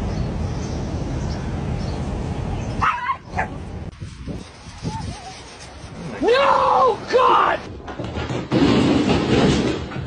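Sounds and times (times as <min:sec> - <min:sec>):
dog yelp: 0:02.8 - 0:03.5
dog yipping: 0:02.8 - 0:03.6.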